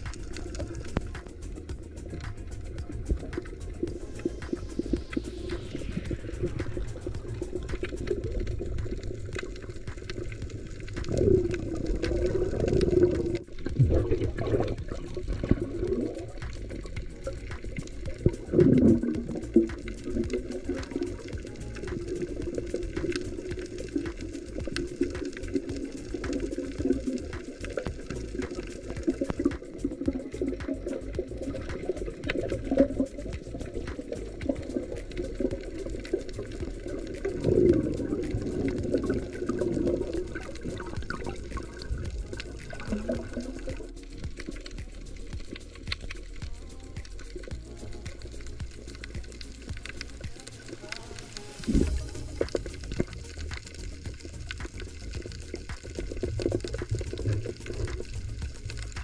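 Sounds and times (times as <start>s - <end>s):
air bubbles gurgling: 0.0s - 59.0s
muffled underwater sound: 0.0s - 59.0s.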